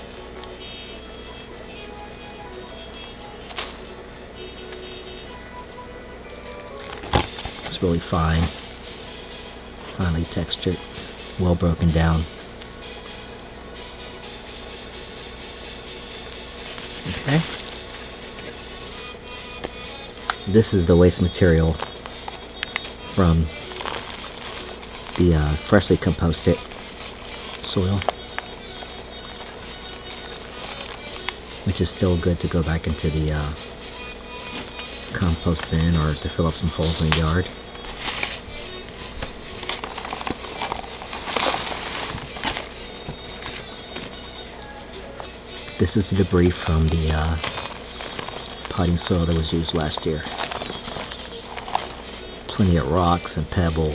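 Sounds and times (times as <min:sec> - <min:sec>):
low background hum: 0:00.0 - 0:53.9
plastic cup crinkling: 0:06.3 - 0:09.1, 0:16.3 - 0:18.6, 0:21.2 - 0:33.5, 0:34.4 - 0:44.1, 0:45.7 - 0:53.9
soil grains pattering: 0:45.8 - 0:52.7.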